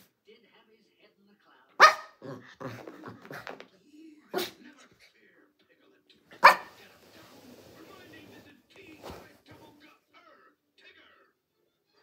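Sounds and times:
small dog barking: 0:01.8 - 0:02.4, 0:06.4 - 0:06.8.

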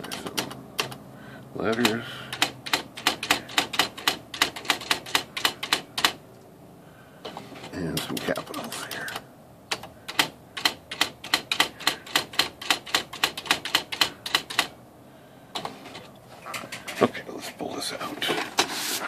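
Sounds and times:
typewriter whirring: 0:00.0 - 0:01.0, 0:01.6 - 0:06.2, 0:07.2 - 0:14.8, 0:15.5 - 0:17.1
typewriter print wheel strikes: 0:01.7 - 0:06.2, 0:08.0 - 0:14.7.

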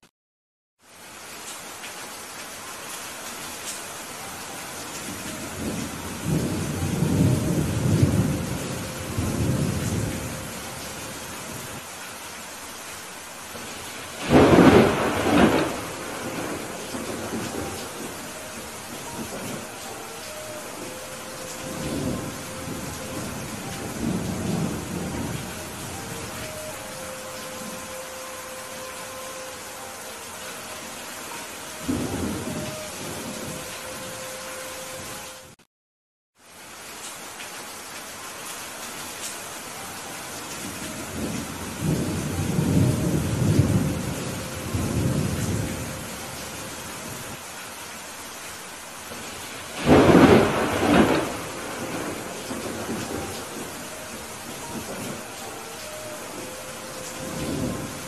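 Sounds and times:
heavy rain falling: 0:00.8 - 0:35.6, 0:36.4 - 0:58.0
thunder rumbling: 0:05.1 - 0:11.8, 0:13.5 - 0:30.3, 0:31.8 - 0:34.2, 0:40.7 - 0:46.4, 0:49.1 - 0:58.0
sharp thunderclap: 0:14.2 - 0:18.1, 0:49.8 - 0:53.6.

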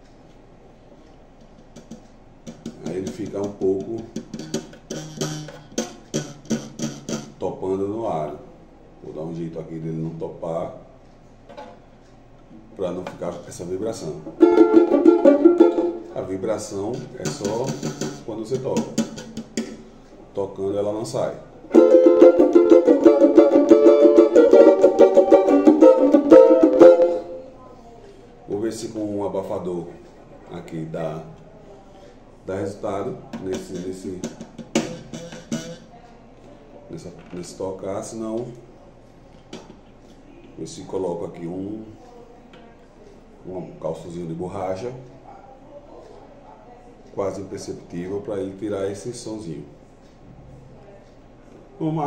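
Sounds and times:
banjo strumming: 0:01.8 - 0:07.4, 0:14.2 - 0:19.8, 0:21.7 - 0:27.6, 0:33.3 - 0:35.9.

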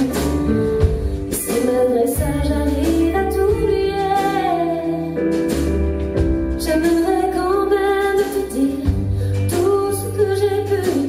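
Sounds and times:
woman singing a ballad: 0:00.0 - 0:11.0.

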